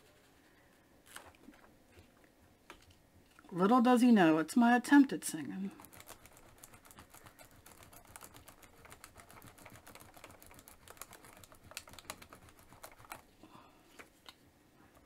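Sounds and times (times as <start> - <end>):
small tool scratching and clicking: 5.8 - 13.3.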